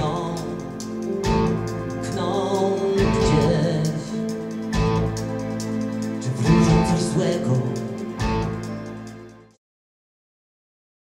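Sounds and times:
band playing slow song: 0.0 - 9.5.

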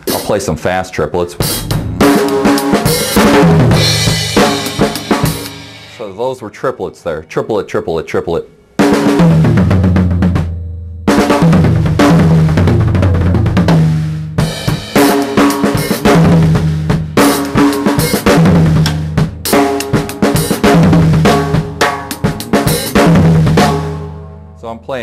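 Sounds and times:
drum kit fills: 0.0 - 6.2, 8.8 - 25.0.

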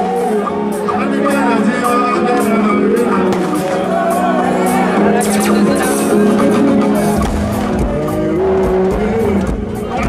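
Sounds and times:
bass-heavy live concert music: 0.0 - 10.0.

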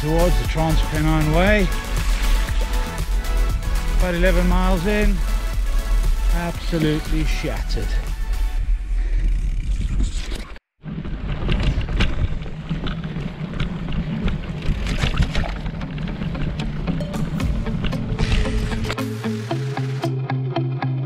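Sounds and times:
background music: 0.0 - 8.8, 16.3 - 21.0
mountain bike riding rumble: 0.0 - 19.0
bike rattles and knocks: 10.8 - 19.0.

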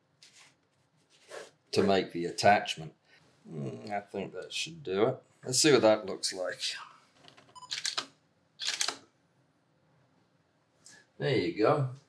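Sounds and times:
camera shutter clicking: 7.7 - 9.0.

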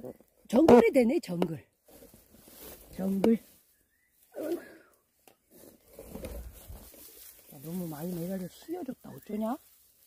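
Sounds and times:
grass and brush rustling: 0.0 - 10.0.

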